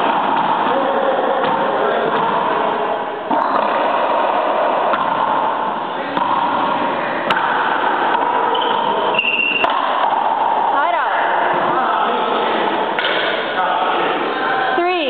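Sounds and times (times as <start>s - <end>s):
indistinct voices echoing: 0.0s - 15.0s
brief high squeak: 8.6s - 9.6s.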